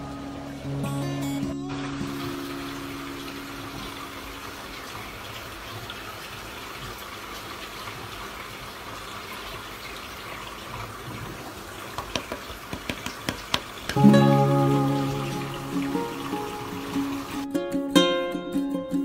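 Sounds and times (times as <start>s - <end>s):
water bubbling in an aquarium: 0.0s - 18.2s
held musical note: 14.0s - 17.7s.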